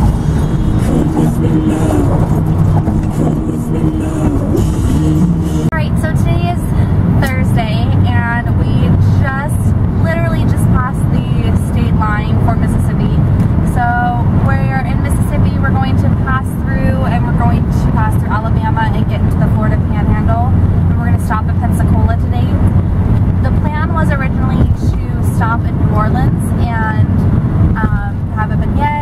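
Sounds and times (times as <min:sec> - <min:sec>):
car interior rumble: 0:00.0 - 0:29.0
woman talking: 0:05.7 - 0:22.8, 0:23.4 - 0:27.2, 0:27.8 - 0:29.0.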